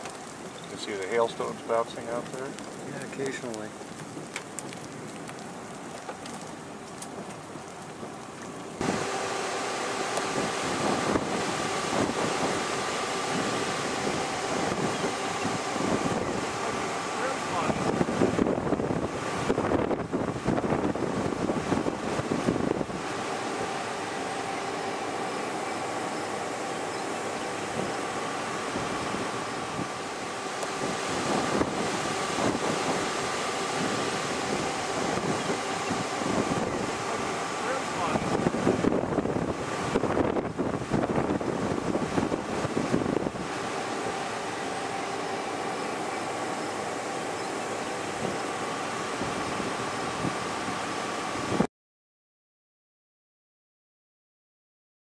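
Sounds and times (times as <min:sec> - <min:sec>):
wind gusting across microphone: 0:00.0 - 0:51.7
steady hum: 0:08.1 - 0:51.7.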